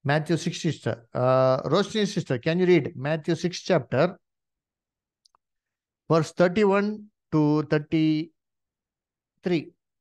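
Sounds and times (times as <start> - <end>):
man speaking: 0.0 - 4.2, 6.1 - 8.4, 9.4 - 9.8.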